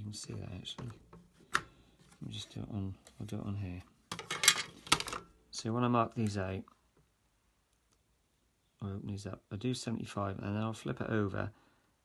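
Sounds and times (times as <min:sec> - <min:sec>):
person speaking: 0:00.0 - 0:04.0, 0:05.5 - 0:06.8.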